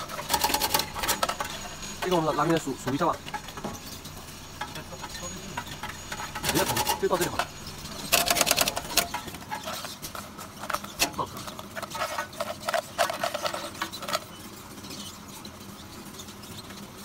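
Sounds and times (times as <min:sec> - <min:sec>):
low machine hum: 0:00.0 - 0:17.0.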